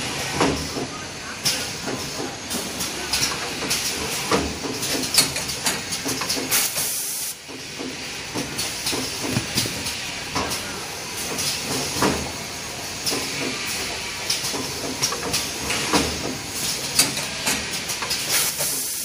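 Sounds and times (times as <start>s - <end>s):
pneumatic hiss: 2.5s - 19.0s
packing machine clacking: 3.1s - 12.3s.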